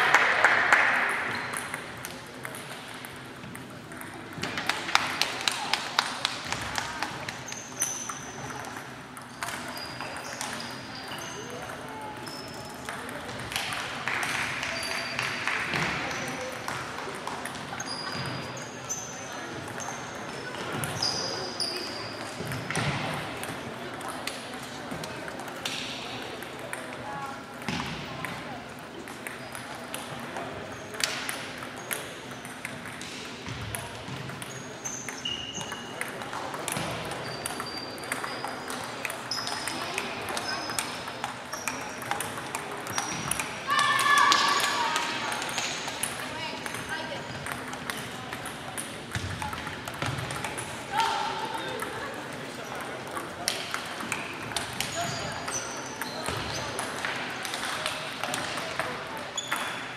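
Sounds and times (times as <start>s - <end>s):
players' voices: 0.0s - 59.9s
table tennis balls clicking: 0.2s - 18.4s, 19.6s - 59.9s.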